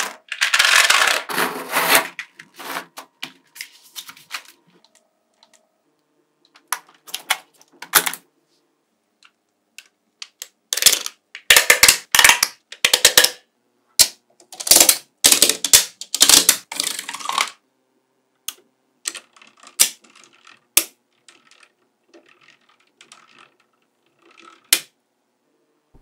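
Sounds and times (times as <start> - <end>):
magnetic balls clicking together: 18.5 - 24.9.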